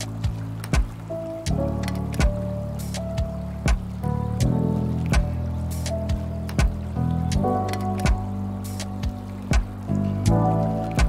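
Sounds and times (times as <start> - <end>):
lo-fi music: 0.0 - 11.0
water sound: 0.0 - 11.0.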